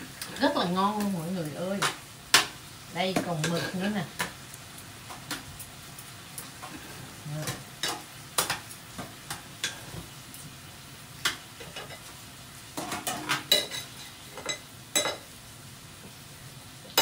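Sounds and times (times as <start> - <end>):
food sizzling on a grill: 0.0 - 17.0.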